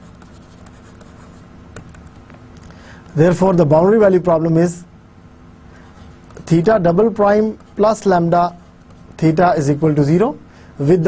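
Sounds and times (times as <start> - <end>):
pen scratching on paper: 0.0 - 2.2
pen tapping: 1.7 - 2.4.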